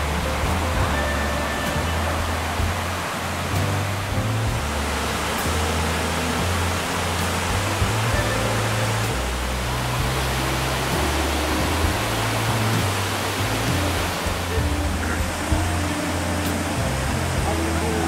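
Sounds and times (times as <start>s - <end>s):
music with slow bass line: 0.0s - 18.0s
waterfall rushing over rocks: 0.0s - 18.0s.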